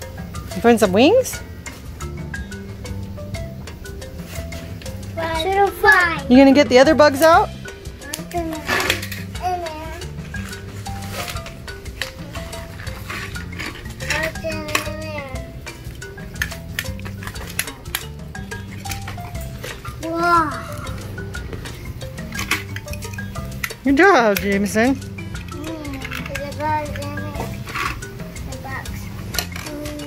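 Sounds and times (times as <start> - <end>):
background music: 0.0 - 30.0
plastic toys clicking: 4.8 - 30.0
toddler babbling: 5.2 - 6.3, 8.0 - 10.2, 12.1 - 12.7, 14.0 - 15.6, 20.0 - 21.2, 25.5 - 27.6, 28.5 - 30.0.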